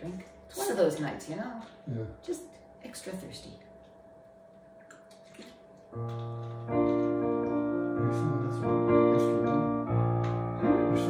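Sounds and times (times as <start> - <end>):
swallowing: 4.8 - 5.9
drinking from plastic bottle: 4.8 - 6.2
water sloshing: 4.8 - 6.6.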